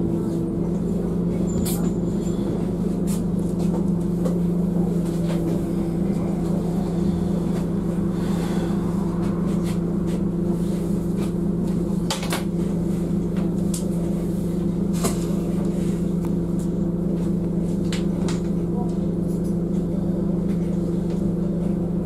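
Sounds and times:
bus engine idling: 0.0s - 22.0s.

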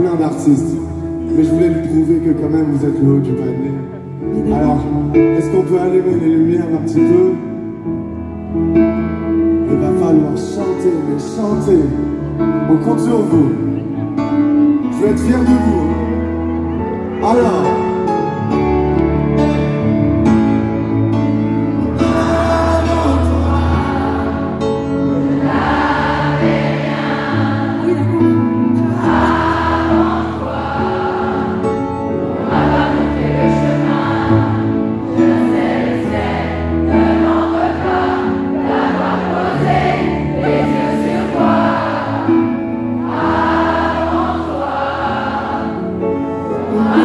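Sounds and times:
keyboard and bass accompaniment: 0.0s - 47.0s
crowd singing together: 21.8s - 47.0s.

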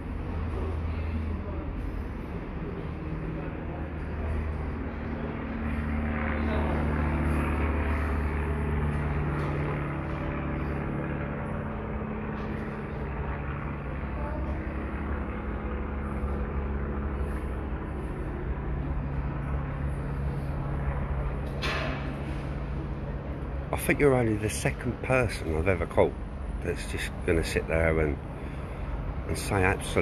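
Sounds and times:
low engine drone: 0.0s - 30.0s.

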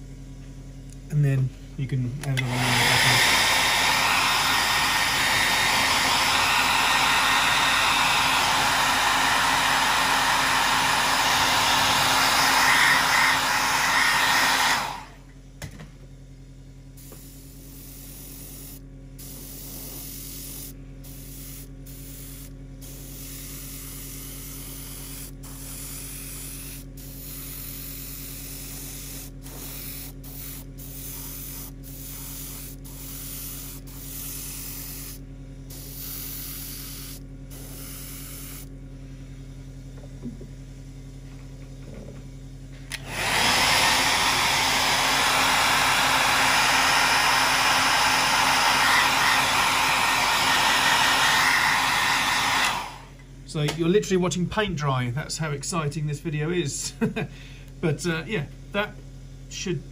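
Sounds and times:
compressor hum: 0.0s - 59.9s
hair dryer blowing: 2.2s - 15.3s, 42.9s - 53.8s.

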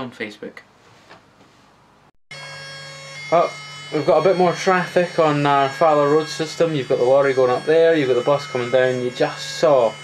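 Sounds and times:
electrical whine: 2.3s - 10.0s.

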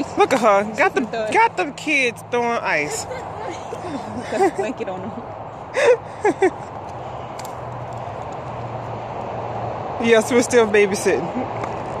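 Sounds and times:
highway traffic noise: 0.0s - 12.0s.

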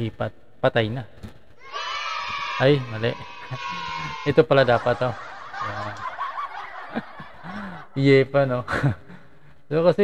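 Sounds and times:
man snickering: 5.0s - 8.0s.

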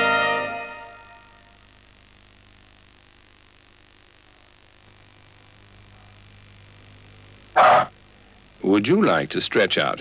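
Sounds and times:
faint steady hum: 0.0s - 10.0s
dog barking: 7.6s - 7.9s.

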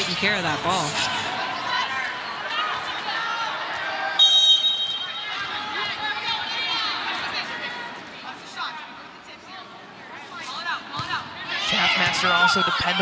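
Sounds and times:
crowd cheering and shouting: 0.0s - 8.1s, 11.0s - 13.0s
referee whistle blast: 4.2s - 5.3s.

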